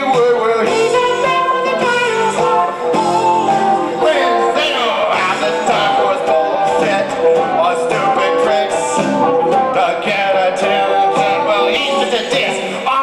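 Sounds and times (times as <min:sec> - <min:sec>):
plucked and tapped rock melody: 0:00.0 - 0:13.0.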